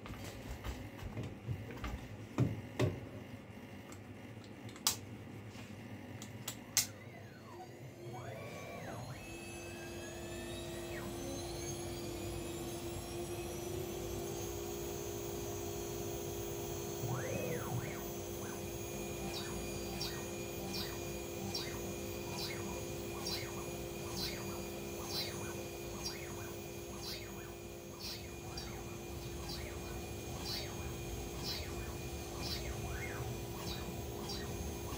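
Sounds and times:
axis motors whining: 6.8s - 34.9s
router spindle whine: 6.8s - 34.9s.

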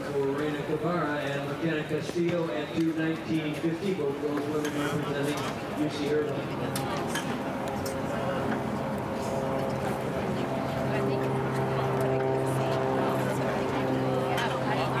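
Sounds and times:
steady motor drone: 0.0s - 15.0s.

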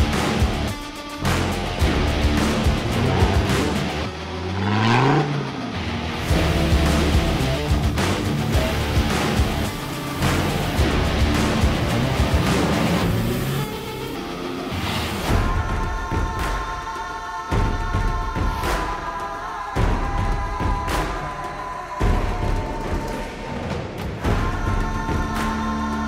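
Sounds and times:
off-road engines revving: 0.0s - 15.3s
background music with steady beat: 0.0s - 26.0s.

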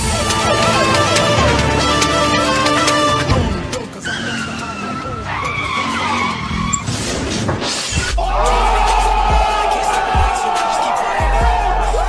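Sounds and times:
tyre screech: 3.7s - 9.0s.

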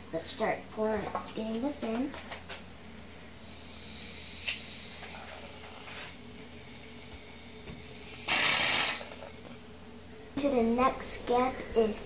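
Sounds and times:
aerosol can hissing: 8.0s - 9.4s.

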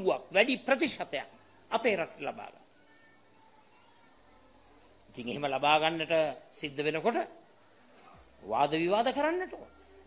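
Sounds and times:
man speaking over public address: 8.4s - 9.7s.

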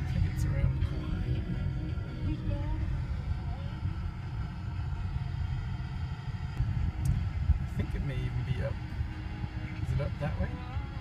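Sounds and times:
car interior road noise: 0.0s - 11.0s.

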